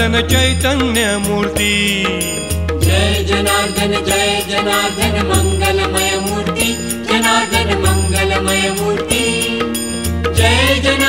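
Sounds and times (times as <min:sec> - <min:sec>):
devotional song: 0:00.0 - 0:11.0
steady percussion beat: 0:00.0 - 0:11.0.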